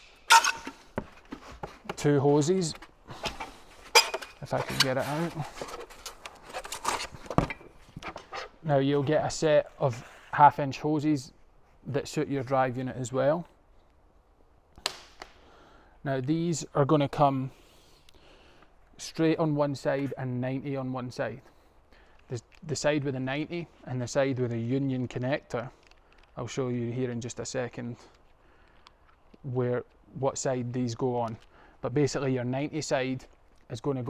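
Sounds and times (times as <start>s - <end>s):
hose rustling in packing box: 0.8s - 8.4s.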